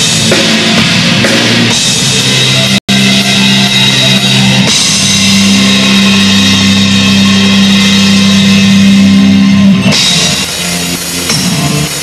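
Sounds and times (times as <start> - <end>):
live heavy rock band: 0.0 - 12.0.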